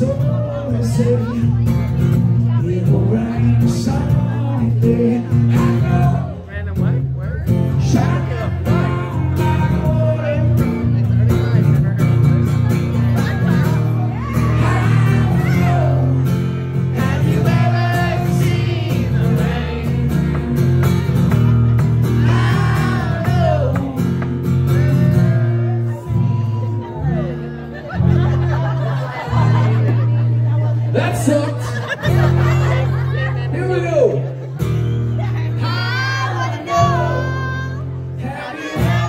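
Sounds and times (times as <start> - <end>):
man singing into a microphone: 0.0 - 1.6, 2.4 - 6.7, 7.7 - 11.1, 14.4 - 20.9, 22.2 - 26.4, 35.6 - 39.0
acoustic guitar strumming: 0.0 - 39.0.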